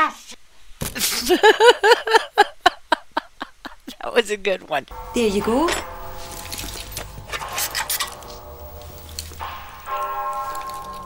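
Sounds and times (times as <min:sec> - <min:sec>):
held musical chord: 0:04.9 - 0:11.0.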